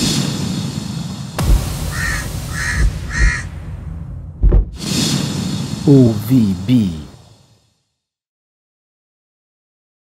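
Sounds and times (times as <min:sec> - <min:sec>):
rushing swell over low rumble: 0:00.6 - 0:05.9
deep hit: 0:01.4 - 0:05.4
harsh bird caws: 0:01.8 - 0:03.6.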